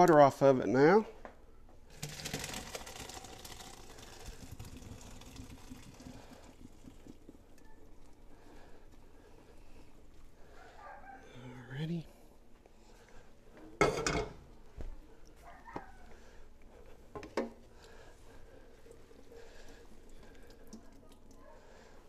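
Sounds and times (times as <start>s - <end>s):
water pouring into a sink: 1.9s - 8.1s.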